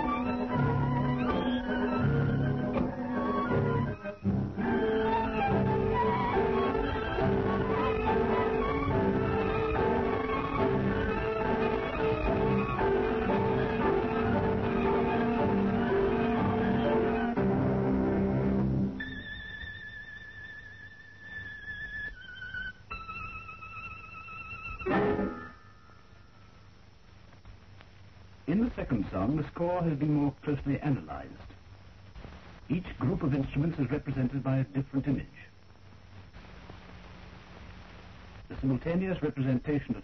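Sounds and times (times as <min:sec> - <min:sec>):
solo violin melody: 0:00.0 - 0:17.5
instrumental accompaniment: 0:00.0 - 0:26.0.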